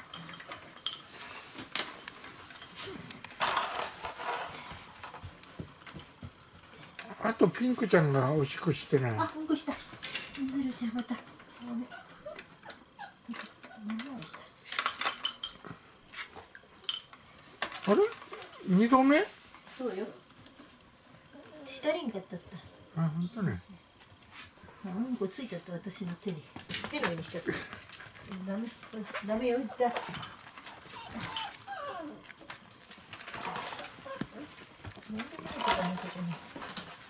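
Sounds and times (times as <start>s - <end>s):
light clinks and taps of toys: 0.0s - 7.6s, 12.3s - 15.9s, 16.5s - 18.9s, 26.0s - 37.0s
puppy whimpering: 11.6s - 14.3s, 30.7s - 32.4s.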